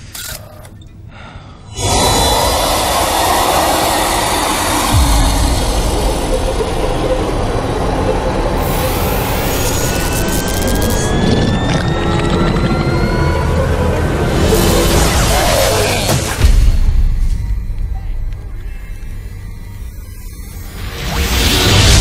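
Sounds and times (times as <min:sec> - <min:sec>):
rising whining tones: 0:01.7 - 0:22.0
deep rumble: 0:04.2 - 0:20.5.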